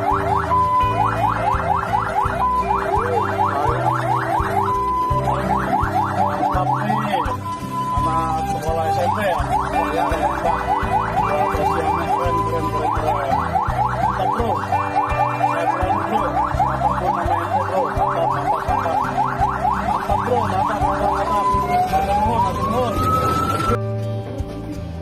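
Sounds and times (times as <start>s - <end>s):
fire engine siren: 0.0s - 23.9s.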